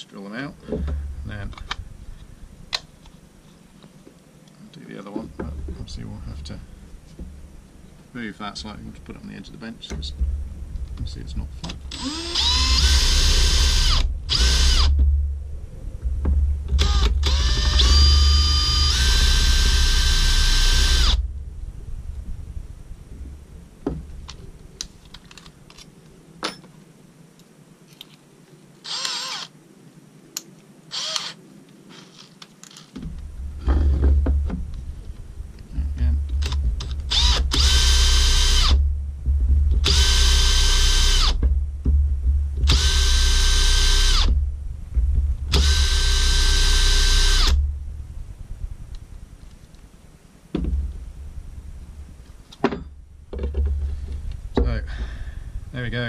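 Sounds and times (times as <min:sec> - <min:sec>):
knocks and handling noise: 0:00.6 - 0:06.2, 0:06.9 - 0:08.0, 0:14.0 - 0:18.0, 0:23.2 - 0:26.8, 0:32.1 - 0:37.9, 0:38.7 - 0:40.5, 0:41.3 - 0:43.2, 0:50.5 - 0:55.2
power drill whining: 0:11.9 - 0:15.0, 0:16.7 - 0:21.2, 0:28.8 - 0:29.5, 0:30.9 - 0:32.8, 0:36.8 - 0:38.8, 0:39.8 - 0:41.4, 0:42.7 - 0:44.3, 0:45.5 - 0:47.6.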